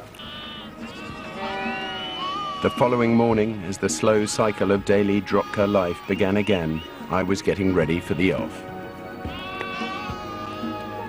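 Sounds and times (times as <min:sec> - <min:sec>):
sheep and goats bleating: 0:00.0 - 0:07.0, 0:09.2 - 0:11.0.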